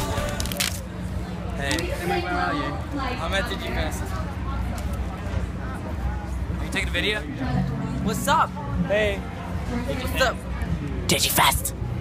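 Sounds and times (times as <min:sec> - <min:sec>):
people talking: 0:11.1 - 0:11.7.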